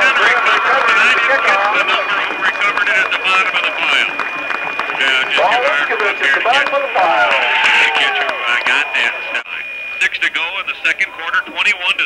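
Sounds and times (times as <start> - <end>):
faint high whine: 0.0 - 12.0
men talking: 0.0 - 12.0.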